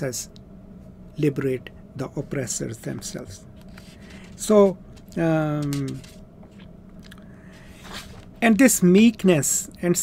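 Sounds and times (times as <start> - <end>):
faint room hum: 0.0 - 10.0
person speaking: 1.1 - 6.2, 8.4 - 10.0.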